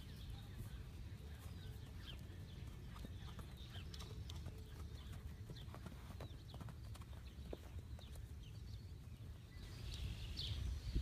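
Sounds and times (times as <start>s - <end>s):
soft hoofbeats on straw: 0.0s - 10.2s.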